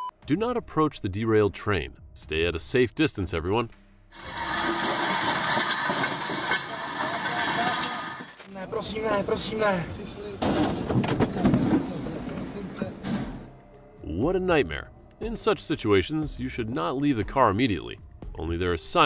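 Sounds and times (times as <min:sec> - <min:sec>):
people's voices: 0:04.2 - 0:13.3
freight train cars rumbling and rattling: 0:08.9 - 0:13.4.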